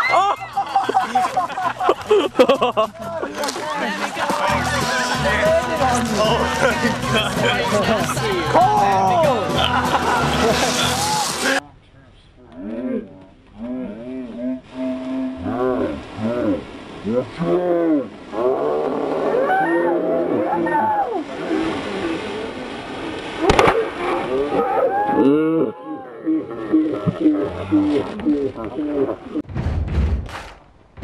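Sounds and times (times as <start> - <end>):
boys laughing and whooping: 0.0 - 11.6, 23.5 - 26.2
sharp knock: 29.5 - 31.0.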